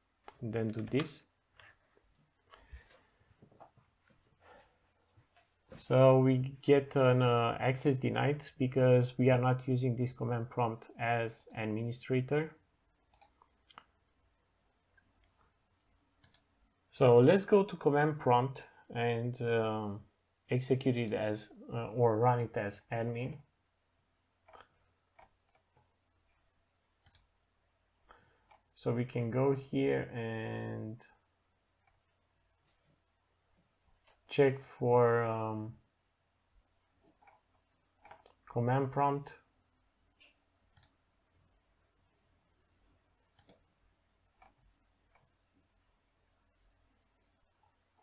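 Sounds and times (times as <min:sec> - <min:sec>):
computer mouse clicks: 0:13.1 - 0:13.9, 0:16.2 - 0:16.5, 0:27.0 - 0:27.3, 0:40.2 - 0:41.0, 0:43.3 - 0:43.6, 0:44.4 - 0:45.3.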